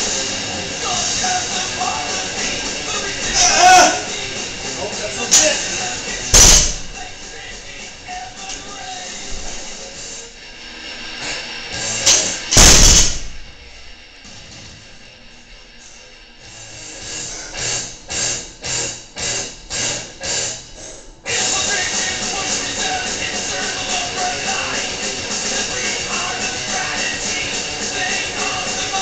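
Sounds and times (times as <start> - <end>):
background music: 0.0 - 14.8, 16.8 - 29.0
barbell crashing on rubber floor: 6.3 - 7.0, 12.1 - 13.6.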